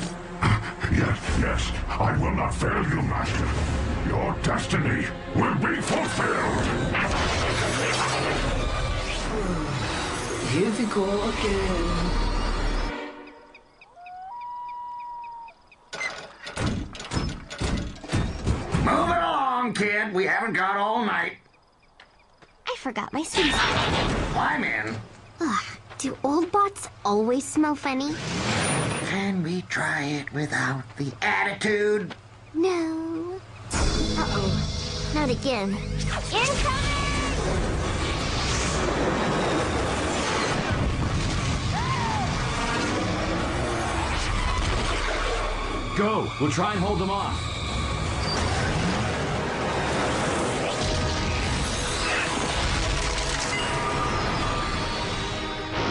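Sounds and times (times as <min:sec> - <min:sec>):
held whistling tone: 0:12.4 - 0:15.7
sharp clattering hits: 0:15.9 - 0:18.9.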